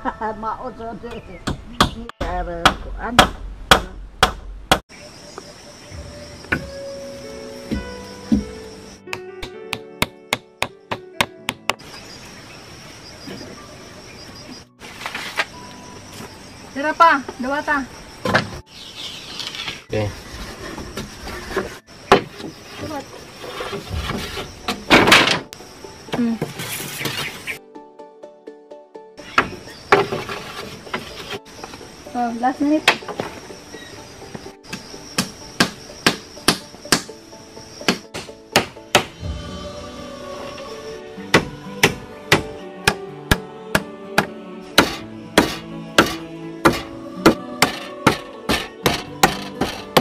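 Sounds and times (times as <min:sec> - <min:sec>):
background music: 0:00.0 - 0:03.2, 0:05.1 - 0:22.2, 0:22.8 - 0:50.0
hammer striking bamboo: 0:02.6 - 0:04.8, 0:34.7 - 0:37.1, 0:37.9 - 0:39.2, 0:41.3 - 0:50.0
bamboo poles knocking and clattering: 0:20.9 - 0:25.6, 0:29.4 - 0:31.4, 0:44.8 - 0:50.0.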